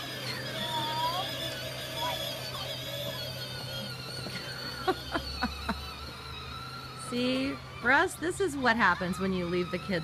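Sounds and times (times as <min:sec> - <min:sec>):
woman laughing: 0:04.2 - 0:06.2.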